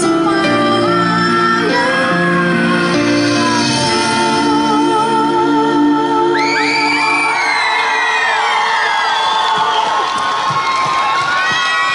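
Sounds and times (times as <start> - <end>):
crowd cheering and whooping: 6.4 - 11.9.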